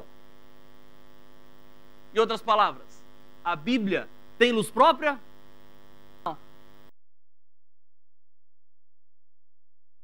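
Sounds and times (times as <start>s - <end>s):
electrical mains hum: 0.0s - 6.9s
person speaking: 2.1s - 5.3s, 6.2s - 6.6s.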